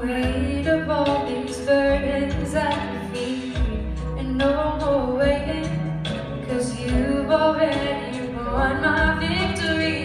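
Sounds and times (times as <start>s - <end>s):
woman singing into microphone: 0.0s - 10.0s.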